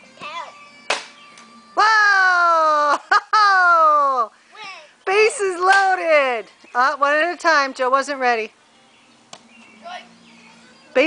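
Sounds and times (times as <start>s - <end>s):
sharp knock: 0.9s - 1.2s
child shouting: 9.8s - 10.1s.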